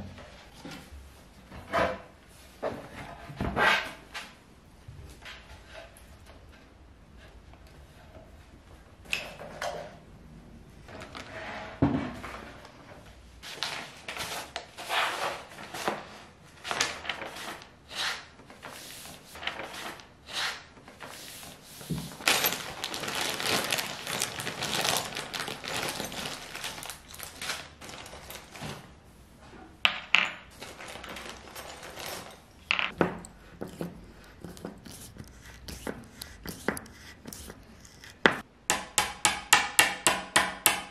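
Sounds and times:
paper sheet rustling: 13.4 - 28.9.

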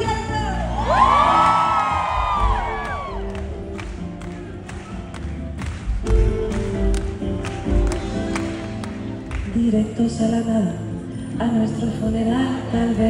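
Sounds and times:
crowd whooping and cheering: 0.5 - 5.8
hand claps: 1.8 - 9.7
live band music: 2.0 - 9.8.

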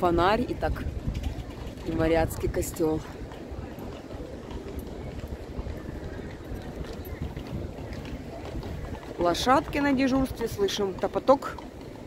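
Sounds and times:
faint street ambience: 0.0 - 12.0
wind noise on microphone: 0.0 - 12.0.

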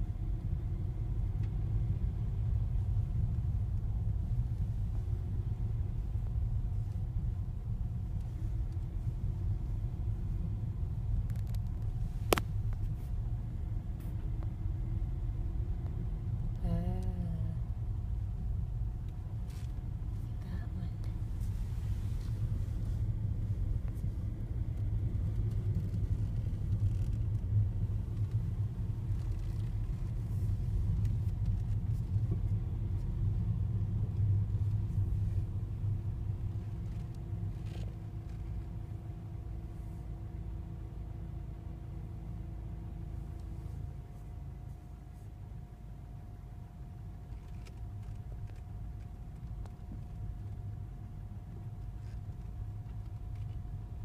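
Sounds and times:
car driving slowly from inside: 0.0 - 54.0.

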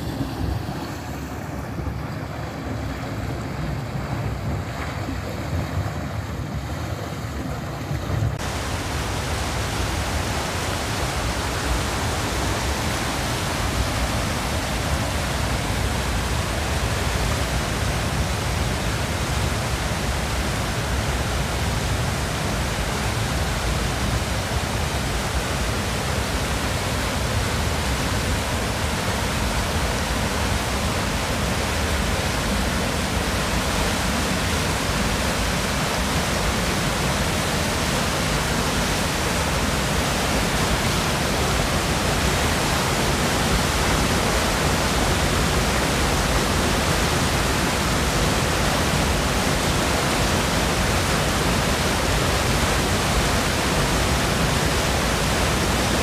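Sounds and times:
turbulent water rushing: 0.0 - 56.0.

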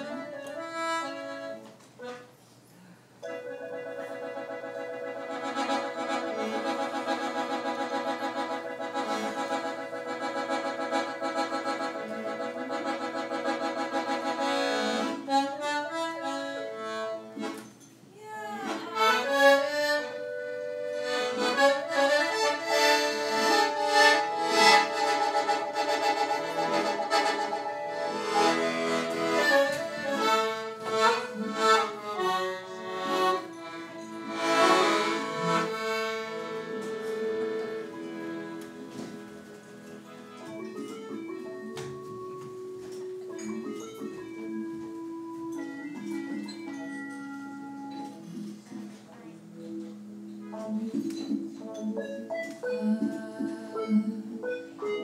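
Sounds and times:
reedy live music: 3.2 - 17.6, 18.5 - 48.1.

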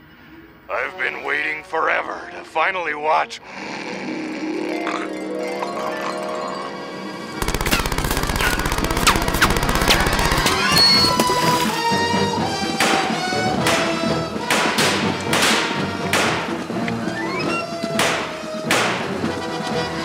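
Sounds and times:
dramatic background music: 3.4 - 20.0
machine-gun fire: 7.4 - 11.6
single gunshots: 12.8 - 16.6, 18.0 - 19.1.

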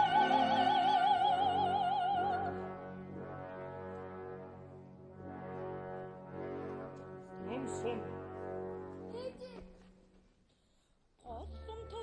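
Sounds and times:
brass: 0.0 - 10.3
orchestra holding low chord: 1.5 - 9.4.

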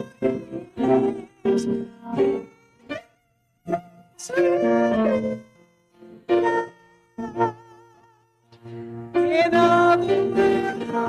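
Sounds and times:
instrumental accompaniment: 0.0 - 11.0
congregation singing a hymn: 9.2 - 11.0.

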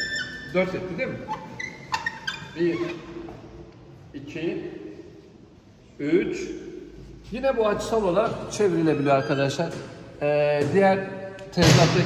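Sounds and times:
man speaking: 0.5 - 1.3, 4.1 - 5.0, 6.0 - 12.0.

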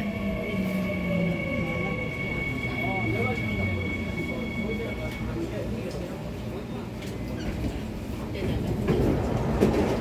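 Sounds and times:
subway train wheels rumbling: 0.0 - 10.0.

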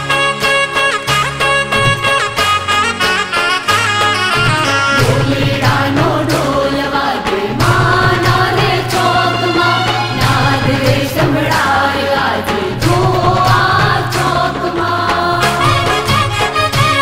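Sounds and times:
folk dance song singing: 1.6 - 17.0
steady percussion beat: 1.7 - 3.0, 4.2 - 17.0.

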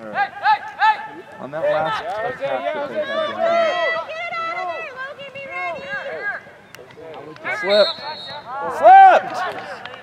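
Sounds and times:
people shouting: 0.1 - 6.4, 7.4 - 9.6
drawn-out high call: 7.5 - 9.2.

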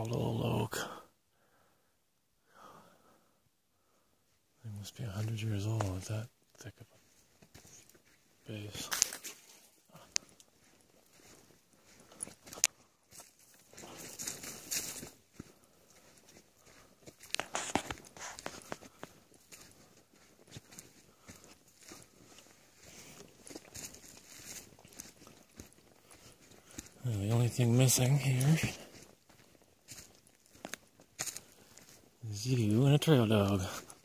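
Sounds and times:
brushing through dry twigs: 8.7 - 15.2, 15.9 - 32.1
footsteps crunching dry leaves: 8.7 - 34.0.

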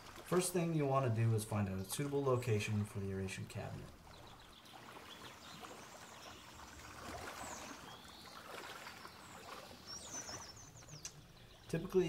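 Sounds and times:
gentle water noise: 0.0 - 12.0.

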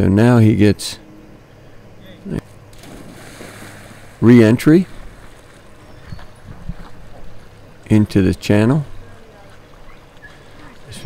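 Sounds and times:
dog splashing into water: 2.7 - 4.2.

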